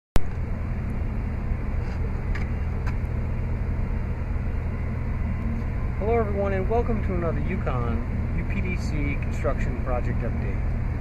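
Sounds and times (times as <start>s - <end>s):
low outdoor rumble: 0.2s - 11.0s.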